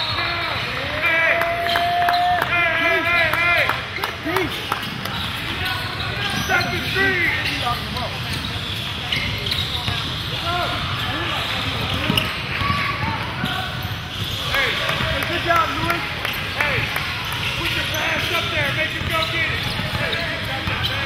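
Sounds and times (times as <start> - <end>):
sneakers squeaking: 0.0 - 21.0
basketball bouncing: 11.8 - 21.0.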